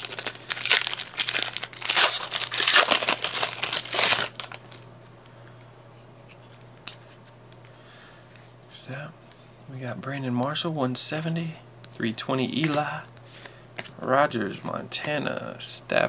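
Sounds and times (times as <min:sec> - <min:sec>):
foil wrapper crinkling and tearing: 0:00.0 - 0:04.8.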